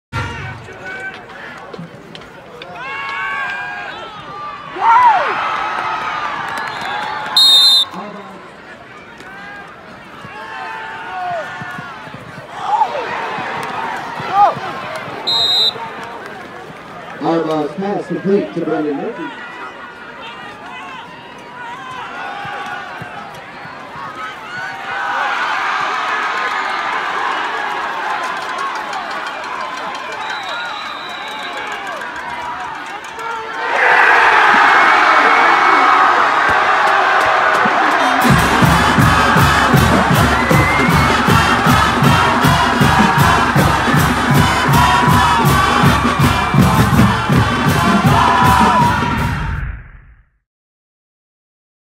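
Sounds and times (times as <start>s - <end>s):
stadium crowd cheering: 0.1s - 49.7s
loud music with fast beat: 38.1s - 49.4s.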